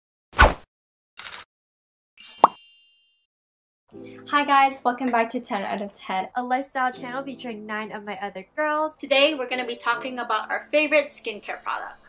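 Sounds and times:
short swish: 0.4s - 0.7s
high ringing chime: 2.2s - 3.3s.

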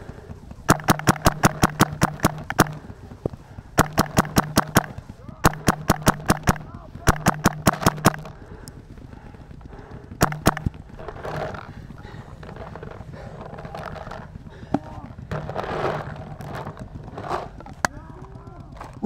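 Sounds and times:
distant voices: 0.0s - 19.0s
paintball marker pops: 0.7s - 8.4s, 10.2s - 11.4s.

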